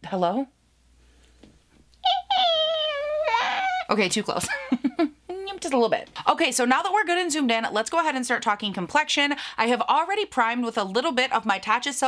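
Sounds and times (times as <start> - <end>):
woman's high-pitched oooh call: 2.0 - 3.9.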